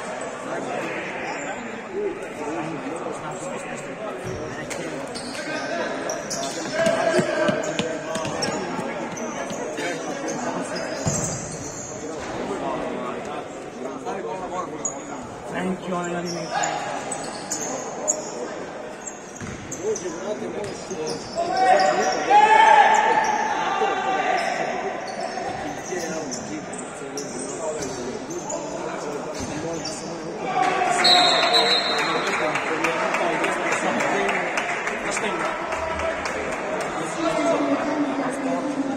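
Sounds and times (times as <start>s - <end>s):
shoes squeaking on court floor: 4.2s - 12.4s, 16.0s - 22.3s, 24.4s - 30.2s
ball kicked and bouncing: 6.7s - 9.6s.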